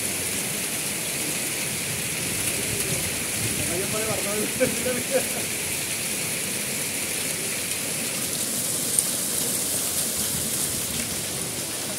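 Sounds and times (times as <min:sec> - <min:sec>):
heavy rain and hail on ground: 0:00.0 - 0:11.9.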